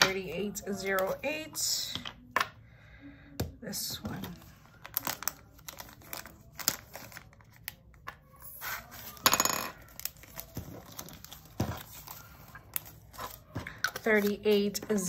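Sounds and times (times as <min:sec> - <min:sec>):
plastic bags and containers clicking: 0:04.8 - 0:07.7.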